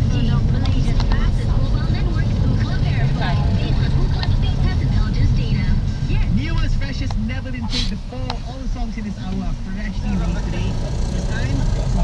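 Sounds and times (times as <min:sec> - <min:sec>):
car cabin road noise: 0:00.0 - 0:12.0
indistinct voices talking: 0:00.0 - 0:12.0.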